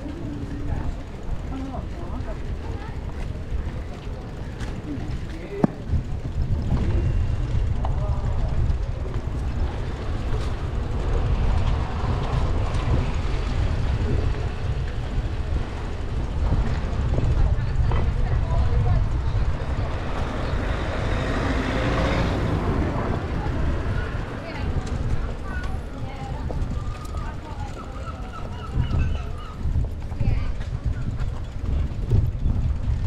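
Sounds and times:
faint voices of passers-by: 0:00.0 - 0:33.0
wind rumble on microphone: 0:00.0 - 0:33.0.

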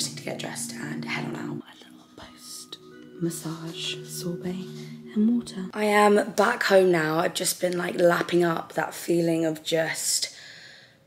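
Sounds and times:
soft background music: 0:00.0 - 0:10.2
woman whispering: 0:01.6 - 0:05.2.

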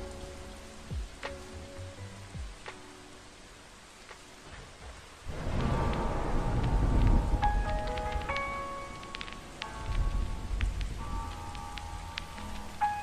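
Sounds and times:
lofi hip hop beat: 0:00.0 - 0:13.0
rain: 0:00.0 - 0:13.0
raindrop clicks: 0:01.0 - 0:01.6, 0:03.9 - 0:13.0.

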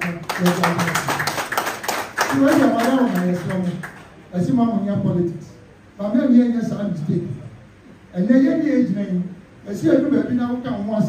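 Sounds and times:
man talking: 0:00.0 - 0:01.3, 0:02.3 - 0:07.5, 0:08.1 - 0:11.0
sharp claps: 0:00.0 - 0:04.1.

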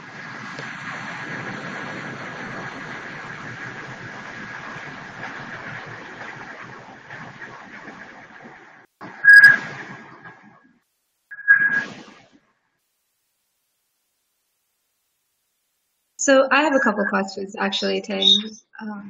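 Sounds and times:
phone line hiss with thin whistle: 0:09.1 - 0:09.6, 0:11.3 - 0:12.1
short electronic beep: 0:09.2 - 0:09.6, 0:11.3 - 0:11.9.

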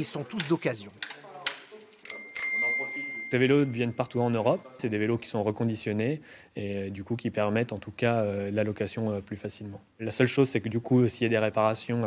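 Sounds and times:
bicycle bell ringing: 0:02.0 - 0:04.0.

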